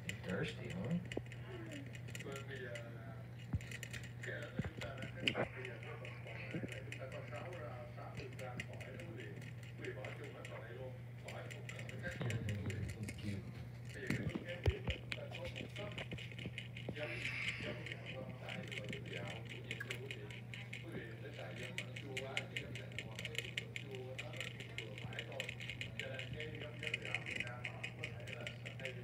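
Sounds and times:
hamster drinking from water bottle: 0:00.0 - 0:29.0
steady low hum: 0:00.0 - 0:29.0
voices talking: 0:04.2 - 0:16.2, 0:16.9 - 0:29.0.

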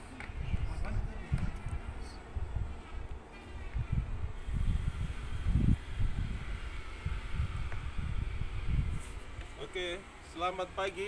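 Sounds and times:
wind buffeting microphone: 0:00.0 - 0:09.9.

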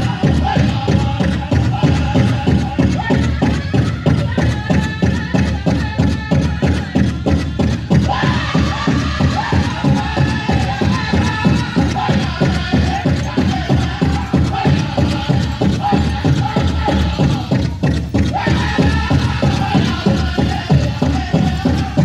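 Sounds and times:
big drum fast steady beat: 0:00.0 - 0:22.0
group singing high: 0:00.0 - 0:22.0.

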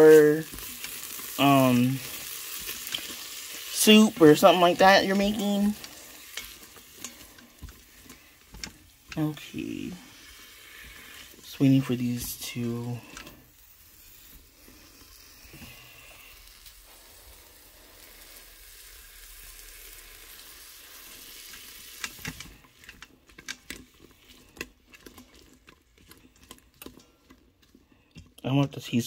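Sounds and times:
green beans sizzling in grease: 0:00.0 - 0:29.0.

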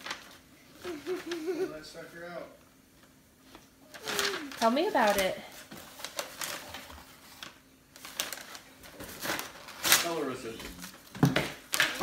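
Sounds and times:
cardboard packaging rustling: 0:00.0 - 0:01.4, 0:03.9 - 0:12.0
tissue paper crinkling: 0:00.0 - 0:01.6, 0:03.9 - 0:12.0.

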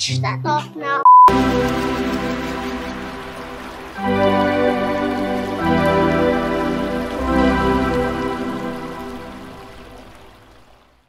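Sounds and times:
slow sustained music chords: 0:01.3 - 0:10.6.

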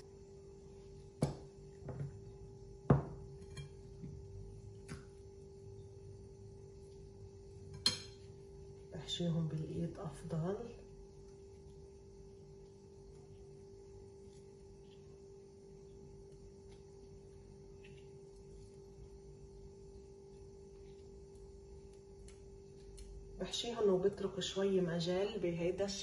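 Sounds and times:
faint room hum: 0:00.0 - 0:26.0.

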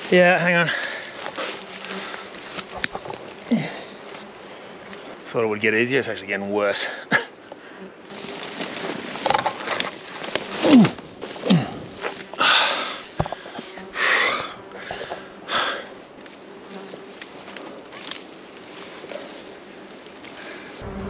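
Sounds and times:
flies buzzing: 0:00.0 - 0:06.1, 0:07.2 - 0:21.0
branches and leaves rustling: 0:00.0 - 0:06.2, 0:07.4 - 0:21.0
heavy breathing: 0:00.7 - 0:02.7, 0:03.4 - 0:05.2, 0:11.4 - 0:16.0.

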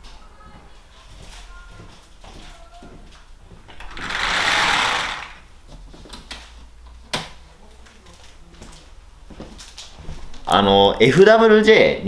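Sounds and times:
sliding door rolling open: 0:03.8 - 0:05.4.

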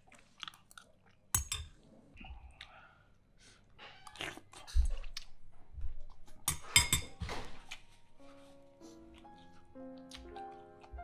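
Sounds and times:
chewing mouth noises: 0:00.0 - 0:01.3.

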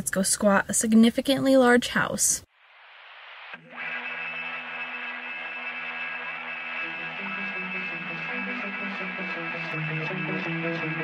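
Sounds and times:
held synth chords: 0:05.6 - 0:11.0.

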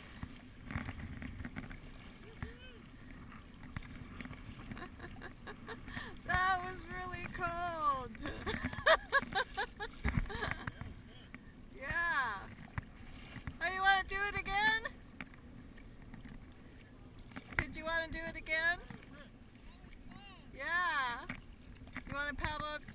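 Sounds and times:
moving water: 0:00.0 - 0:22.9
wind: 0:00.0 - 0:22.9.

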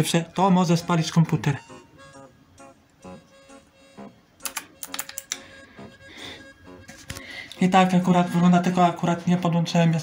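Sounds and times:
keyboard key clicks: 0:04.4 - 0:05.4.

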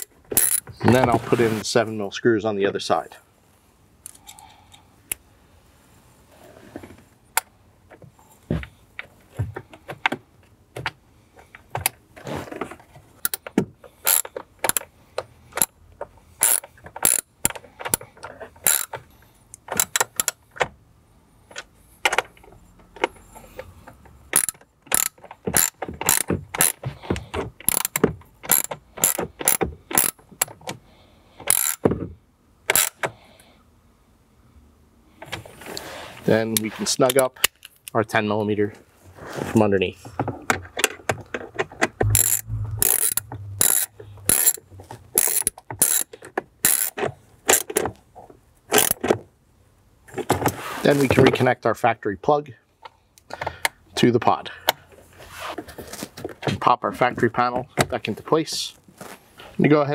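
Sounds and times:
socket ratchet clicking: 0:00.0 - 0:00.6, 0:14.0 - 0:14.9, 0:16.4 - 0:18.0, 0:18.6 - 0:19.0, 0:19.6 - 0:20.4, 0:24.3 - 0:26.8, 0:27.6 - 0:30.2, 0:31.4 - 0:31.8, 0:32.7 - 0:33.1, 0:42.0 - 0:44.6, 0:45.2 - 0:47.7.

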